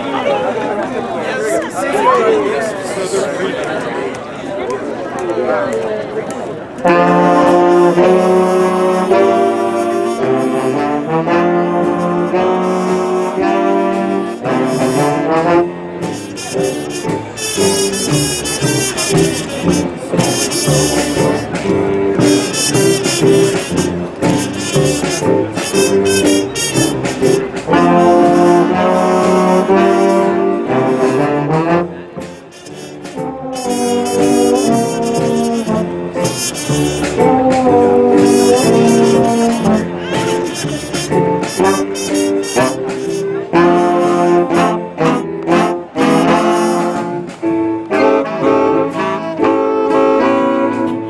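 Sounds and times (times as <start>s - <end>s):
jazz big band playing: 6.8s - 51.0s.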